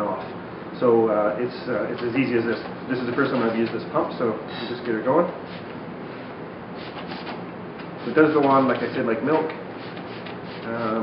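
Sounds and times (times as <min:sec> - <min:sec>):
hand pump sprayer strokes: 0:05.4 - 0:05.8, 0:06.8 - 0:11.0.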